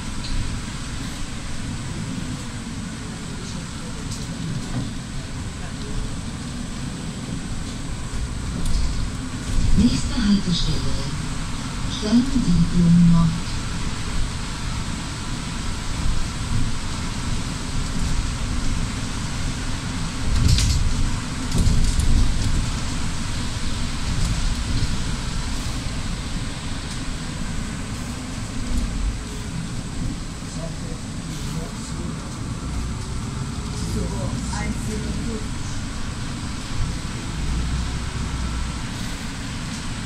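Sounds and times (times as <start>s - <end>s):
bus cabin low rumble: 0.0s - 40.0s
bus jolts: 0.0s - 40.0s.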